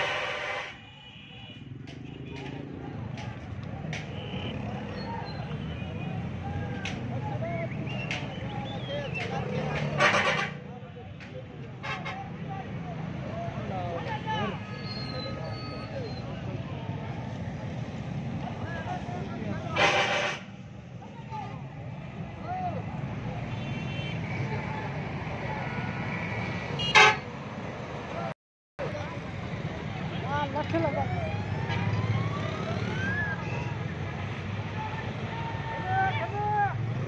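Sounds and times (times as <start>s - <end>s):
vehicle horns honking: 0.0s - 2.4s, 4.1s - 4.7s, 9.9s - 10.6s, 19.7s - 20.5s, 23.5s - 24.3s, 26.8s - 27.3s.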